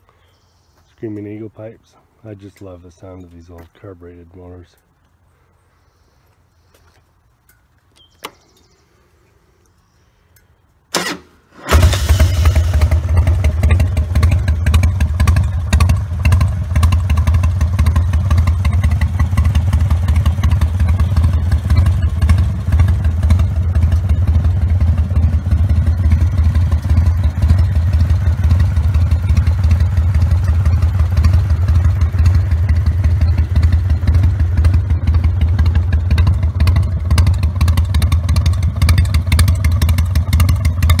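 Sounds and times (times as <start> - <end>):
motorcycle engine starting: 10.9 - 41.0
motorcycle engine idling: 11.7 - 41.0.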